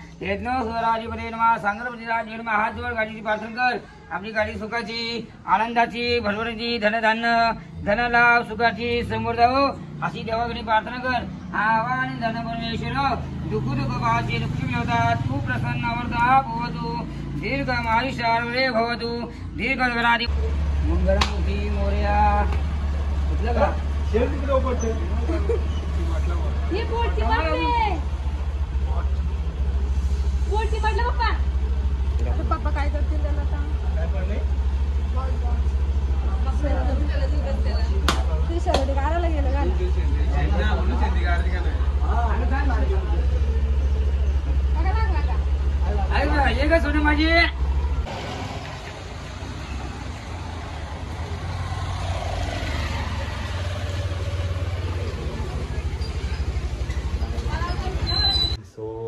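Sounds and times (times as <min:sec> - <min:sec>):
people's voices: 0:00.0 - 0:59.0
engine throbbing steadily: 0:20.1 - 0:58.0
scooter engine running: 0:47.5 - 0:58.4.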